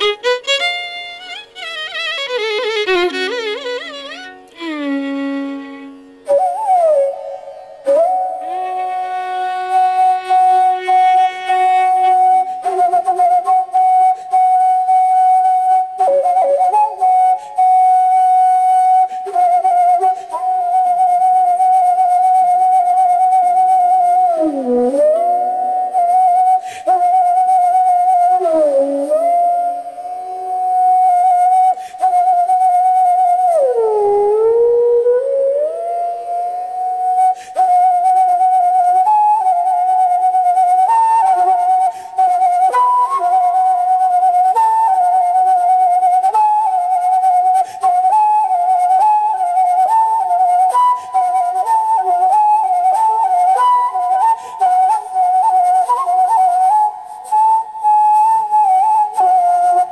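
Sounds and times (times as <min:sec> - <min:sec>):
bamboo flute solo: 0:00.0 - 0:59.9.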